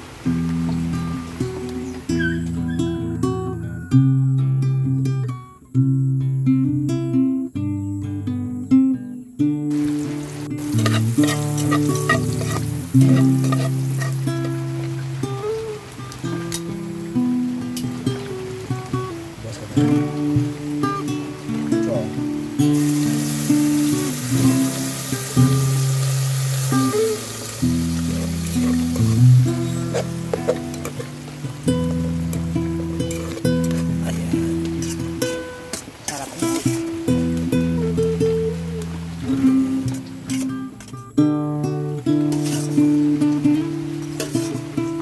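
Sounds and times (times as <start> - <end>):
loud sizzle: 0.0 - 2.6, 9.7 - 45.0
acoustic guitar music: 0.0 - 45.0
garlic frying in oil: 9.7 - 40.6, 42.1 - 45.0
stirring knocks: 10.6 - 14.7, 28.0 - 31.2.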